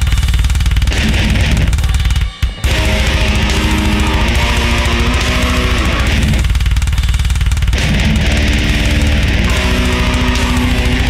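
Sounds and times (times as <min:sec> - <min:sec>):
deep bass: 0:00.0 - 0:01.8, 0:02.6 - 0:11.0
distorted metal guitars: 0:00.0 - 0:11.0
fast drumming: 0:00.0 - 0:11.0.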